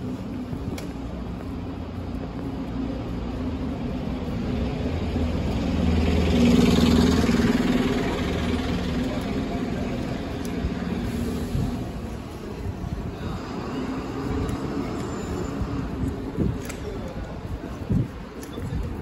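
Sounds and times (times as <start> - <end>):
bus engine hum passing by: 0.0 - 17.8.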